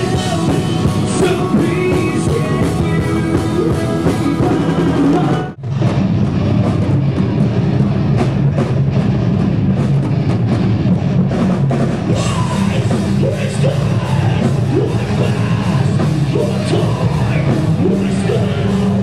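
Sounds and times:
heavy metal song: 0.0 - 19.0
live rock band: 0.0 - 19.0.

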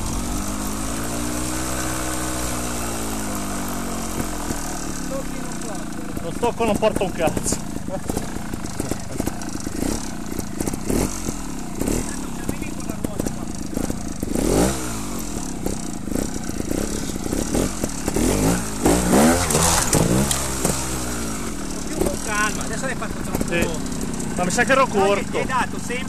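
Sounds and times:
motorcycle knocking over obstacle: 0.0 - 25.1
motorcycle engine revving: 0.0 - 26.0.

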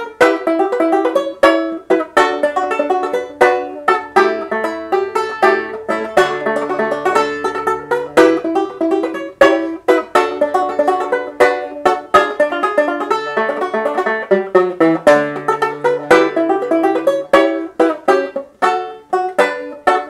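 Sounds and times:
banjo playing: 0.0 - 20.0.

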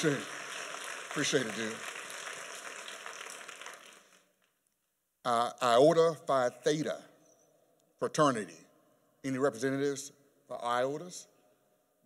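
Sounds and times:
audience applause: 0.0 - 4.3.

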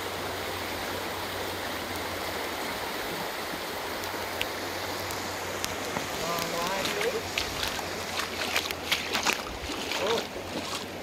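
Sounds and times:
river water rushing over gravel: 0.0 - 11.0.

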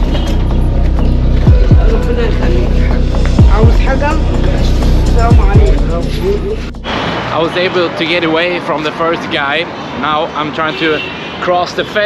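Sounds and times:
low bass line: 0.0 - 7.0
bass drops: 0.0 - 7.2.

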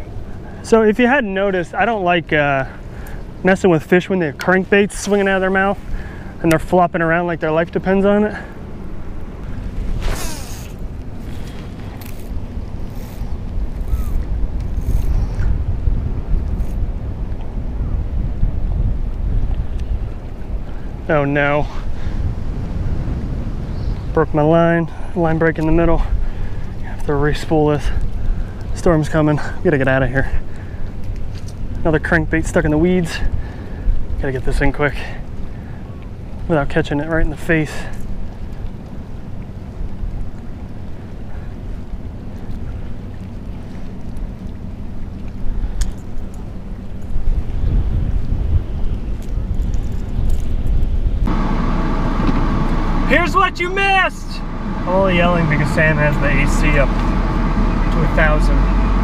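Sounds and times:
wind buffeting microphone: 4.5 - 37.4, 38.0 - 59.0
wind on microphone: 9.0 - 24.6, 45.0 - 53.1
car air conditioning blowing: 51.2 - 59.0.

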